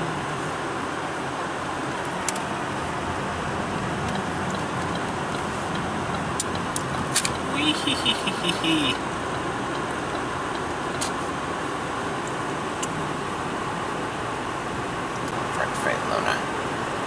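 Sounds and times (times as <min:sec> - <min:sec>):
car road and engine noise: 0:00.0 - 0:17.0.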